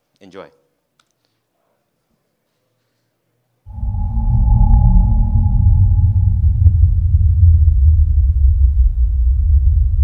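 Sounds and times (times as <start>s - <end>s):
sustained high drone tone: 3.7s - 9.0s
deep steady rumble: 3.7s - 10.0s.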